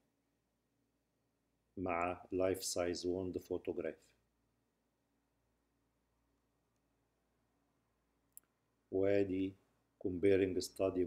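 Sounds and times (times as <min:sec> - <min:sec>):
man speaking: 0:01.8 - 0:04.2, 0:08.9 - 0:11.0.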